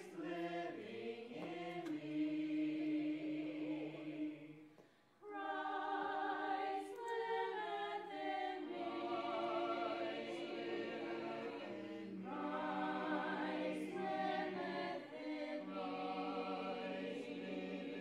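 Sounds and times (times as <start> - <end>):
adults and children singing together: 0.0 - 4.6, 5.2 - 18.0.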